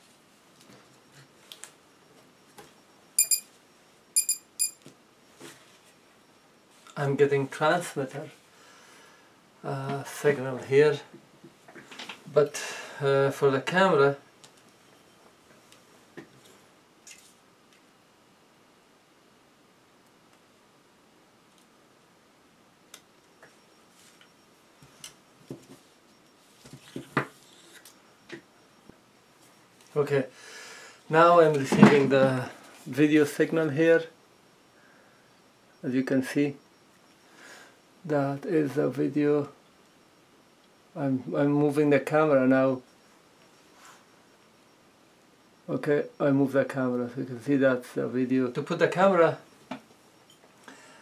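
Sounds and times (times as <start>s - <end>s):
electronic beeps: 0.7s - 4.9s, 14.2s - 15.4s, 26.1s - 30.2s, 32.9s - 50.4s.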